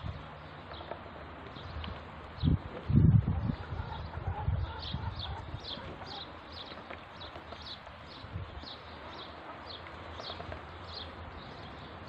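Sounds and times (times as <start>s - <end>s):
ducklings peeping: 3.2s - 11.2s.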